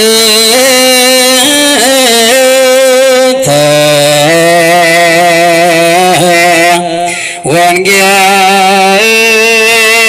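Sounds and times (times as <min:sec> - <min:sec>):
liturgical chant: 0:00.0 - 0:10.0.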